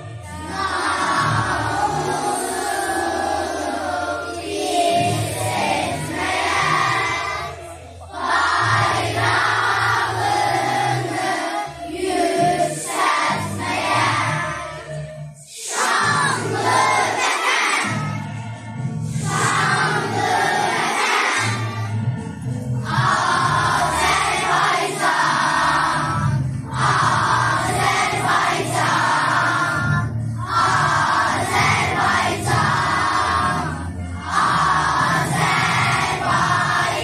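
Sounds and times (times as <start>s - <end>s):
children's choir singing: 0.0s - 37.0s.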